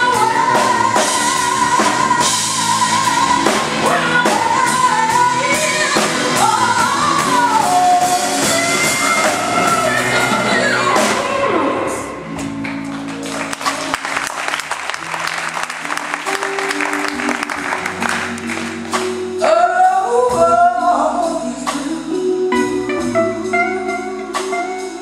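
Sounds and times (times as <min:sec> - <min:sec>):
woman singing: 0:00.0 - 0:12.2, 0:19.3 - 0:25.0
bass line: 0:00.0 - 0:25.0
drums: 0:00.0 - 0:25.0.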